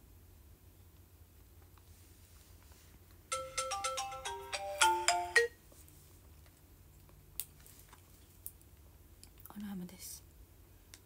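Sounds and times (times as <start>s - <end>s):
electronic ringtone jingle: 3.3s - 5.6s.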